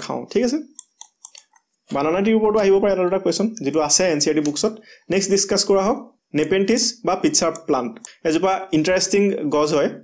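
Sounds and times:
person speaking: 0.0s - 10.0s
small sharp clicks: 0.8s - 1.6s.

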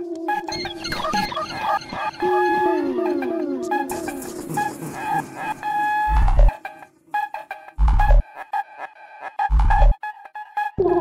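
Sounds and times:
held synthesizer tones: 0.1s - 4.9s, 10.8s - 11.0s.

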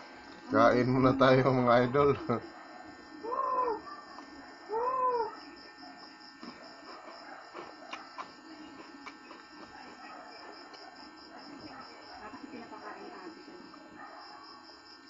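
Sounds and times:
pigeons cooing: 3.2s - 5.5s.

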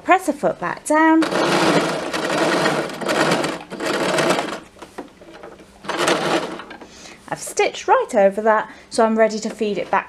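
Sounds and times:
sewing machine stitching: 1.2s - 6.8s.

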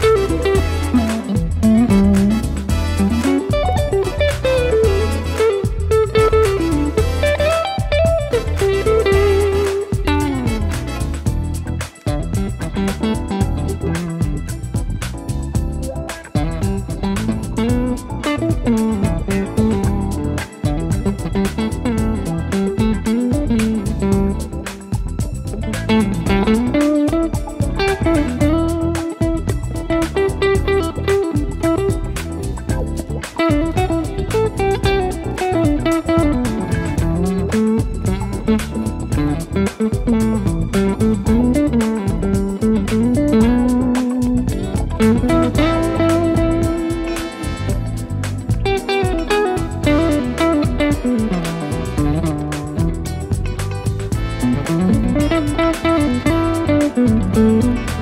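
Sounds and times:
backing track with bass: 0.0s - 58.0s
electric guitar lead melody: 0.0s - 58.0s.

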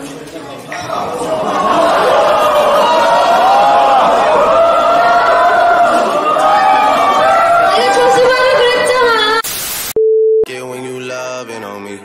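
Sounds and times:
steady pure beep: 9.9s - 10.5s.

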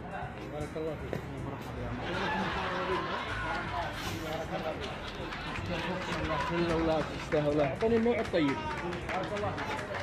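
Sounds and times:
busy background noise: 0.0s - 10.0s.

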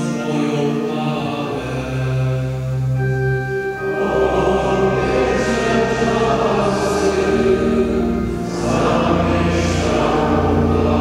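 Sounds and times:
voices singing a chant: 0.0s - 3.1s, 3.7s - 11.0s.

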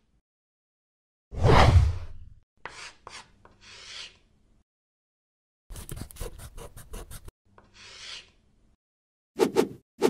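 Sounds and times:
scratchy marker stroke: 2.6s - 4.2s, 5.7s - 8.4s.

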